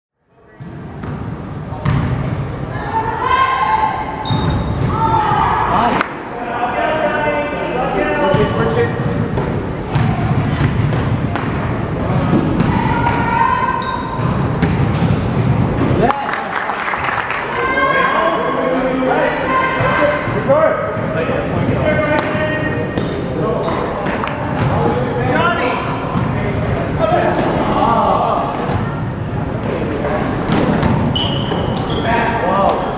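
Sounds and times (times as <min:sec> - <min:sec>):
basketball bouncing on gym floor: 0:00.6 - 0:02.2, 0:08.3 - 0:13.3, 0:14.1 - 0:15.9, 0:26.1 - 0:26.4
shoe squeak: 0:04.2 - 0:04.8, 0:08.4 - 0:09.0, 0:12.6 - 0:15.6, 0:22.9 - 0:25.0, 0:31.1 - 0:32.9
players and spectators shouting: 0:04.8 - 0:08.3, 0:12.6 - 0:14.2, 0:17.4 - 0:20.8
voices calling out: 0:12.0 - 0:14.6.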